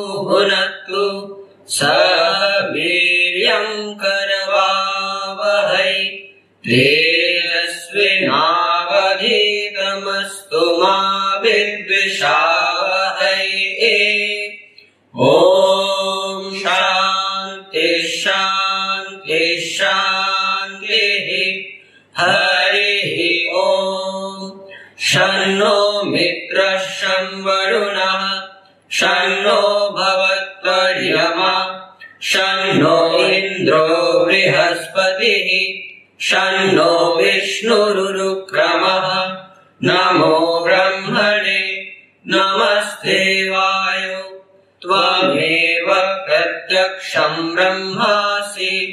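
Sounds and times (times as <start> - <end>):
men chanting: 0.0 - 14.6, 15.2 - 48.9.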